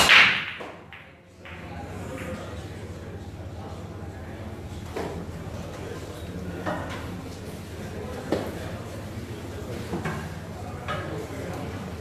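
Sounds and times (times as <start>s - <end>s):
cue striking ball crack: 0.0s - 2.6s
pool balls clattering: 0.0s - 2.6s.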